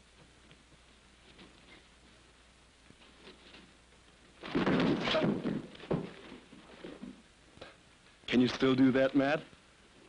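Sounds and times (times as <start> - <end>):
scuffling and impact: 4.4 - 7.2.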